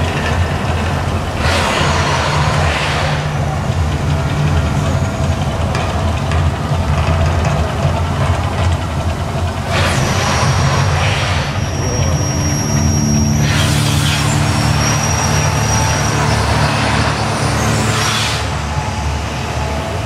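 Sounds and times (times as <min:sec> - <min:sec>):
deep steady rumble: 0:00.0 - 0:20.0
gas flames rushing hiss: 0:01.4 - 0:03.9, 0:09.6 - 0:19.3.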